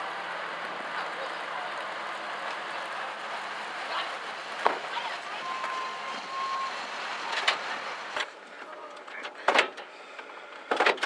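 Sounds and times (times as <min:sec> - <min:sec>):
engine and road noise: 0:00.0 - 0:11.0.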